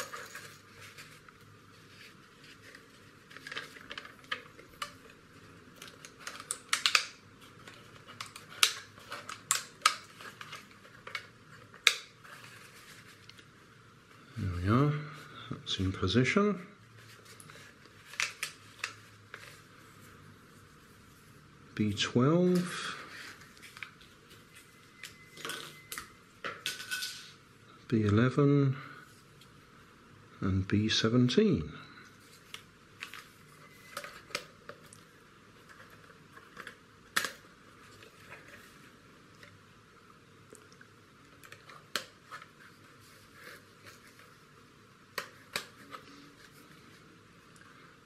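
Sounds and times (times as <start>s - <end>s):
plastic parts clicking and snapping: 2.6s - 12.1s, 35.7s - 38.5s.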